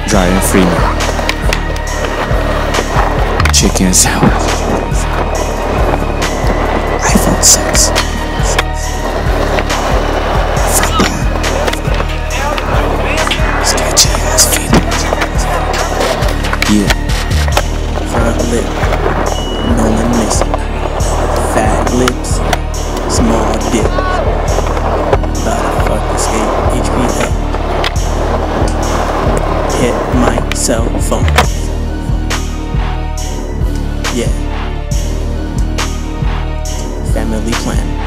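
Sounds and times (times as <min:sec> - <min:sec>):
skateboard wheels rolling on concrete: 0:00.0 - 0:38.0
music with heavy bass beat: 0:00.1 - 0:38.0
skateboard clacks: 0:00.9 - 0:19.4, 0:20.2 - 0:30.6.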